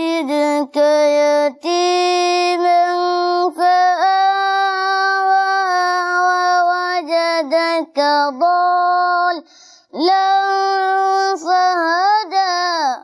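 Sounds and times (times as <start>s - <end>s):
boy chanting recitation: 0.0s - 13.0s.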